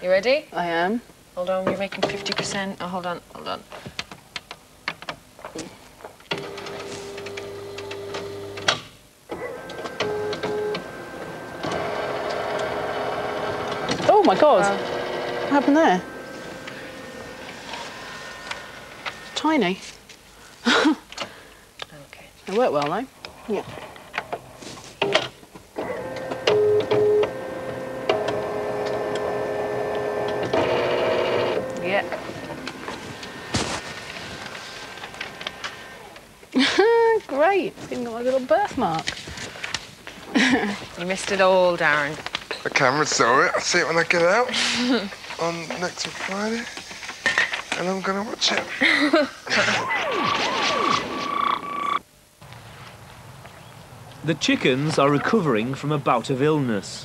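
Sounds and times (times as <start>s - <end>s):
photocopier hum: 6.0s - 21.8s, 24.3s - 42.1s
photocopier beeps: 9.4s - 19.6s, 25.9s - 28.6s
steady mechanical run: 11.1s - 19.3s, 28.0s - 33.6s.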